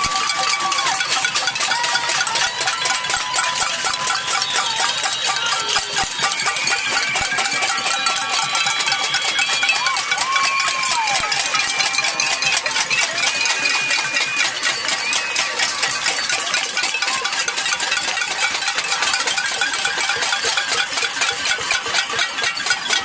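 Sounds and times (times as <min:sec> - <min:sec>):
crowd banging pots and pans: 0:00.0 - 0:23.0.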